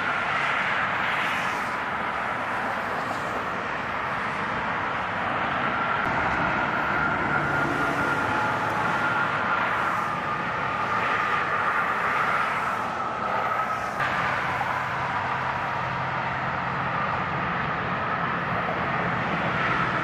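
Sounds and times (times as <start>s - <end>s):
vehicle engines: 0.0s - 20.0s
tyres hissing on wet road: 0.3s - 4.6s, 6.5s - 16.0s.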